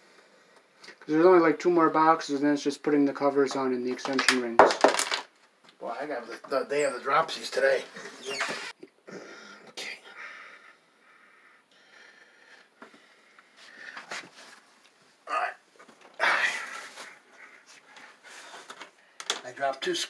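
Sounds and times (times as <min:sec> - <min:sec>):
man breathing and huffing: 0:09.0 - 0:19.2.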